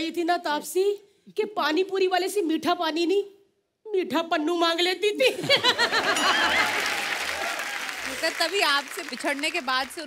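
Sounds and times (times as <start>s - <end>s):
studio audience applauding: 6.0s - 10.0s
voices cheering: 6.1s - 9.2s.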